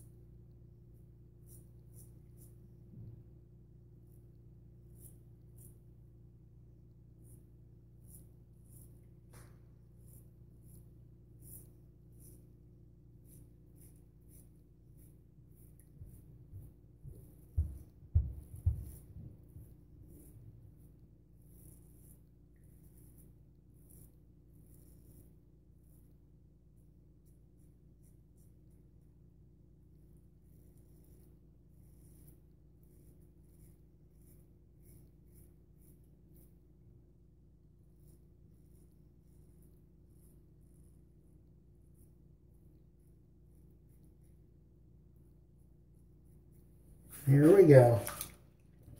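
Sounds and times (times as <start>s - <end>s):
razor scraping stubble: 1.4s - 2.7s, 4.8s - 5.9s, 7.2s - 26.0s.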